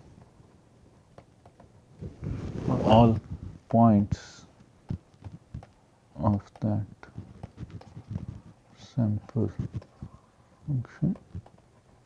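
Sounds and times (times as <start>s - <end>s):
stylus tapping on tablet: 4.8s - 8.4s, 9.6s - 10.1s, 11.1s - 11.7s.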